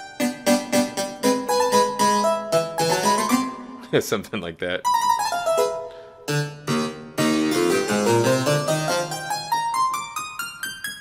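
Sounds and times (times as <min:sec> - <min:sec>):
harpsichord playing: 0:00.0 - 0:04.0, 0:04.8 - 0:11.0.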